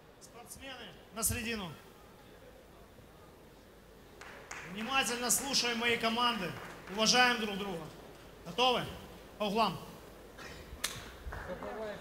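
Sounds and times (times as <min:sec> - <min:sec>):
faint distant voices: 0:01.7 - 0:04.2.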